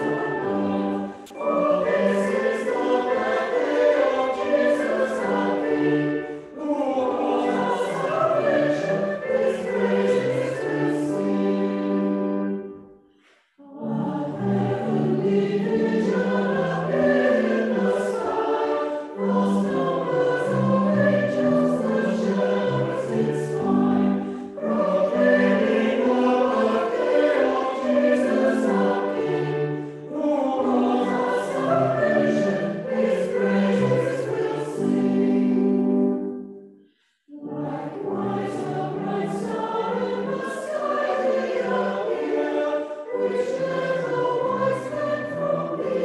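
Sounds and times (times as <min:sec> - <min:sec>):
church choir singing: 0:00.0 - 0:46.0.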